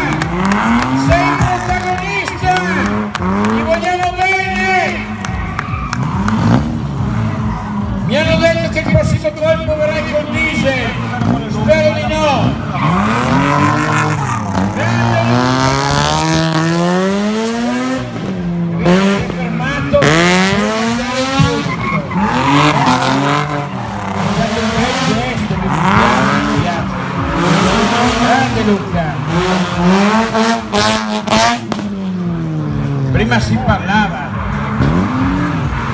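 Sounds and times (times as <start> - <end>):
car engine revving: 0.0 - 35.9
tyres squealing: 20.9 - 26.5.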